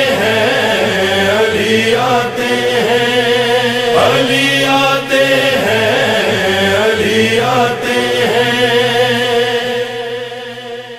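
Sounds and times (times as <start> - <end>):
voices chanting wordless melody: 0.0 - 10.9.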